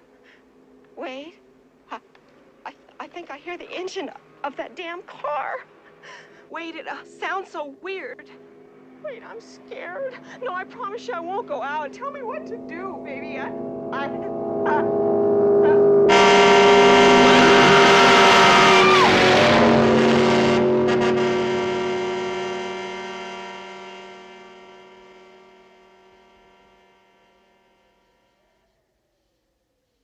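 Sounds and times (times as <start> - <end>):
held chord of many tones: 6.9 - 28.3
short falling cry: 13.6 - 21.1.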